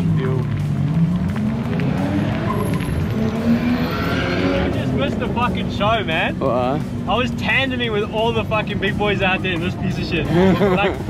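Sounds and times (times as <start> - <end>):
car engine running at low revs: 0.0 - 9.6.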